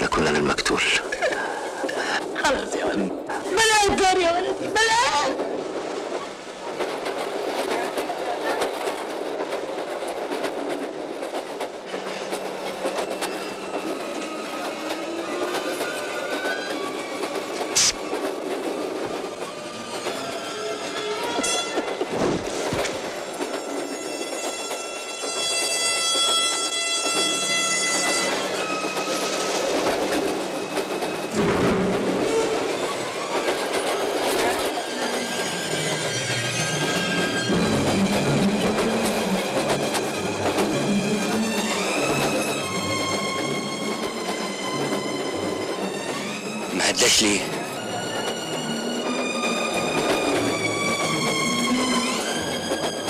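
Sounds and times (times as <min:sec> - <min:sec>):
train wheels clattering: 0:04.8 - 0:46.7, 0:47.5 - 0:53.0.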